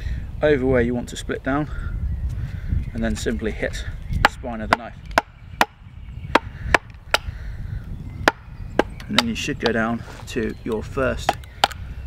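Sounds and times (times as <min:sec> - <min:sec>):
wooden stick striking knife spine: 0:08.2 - 0:09.8.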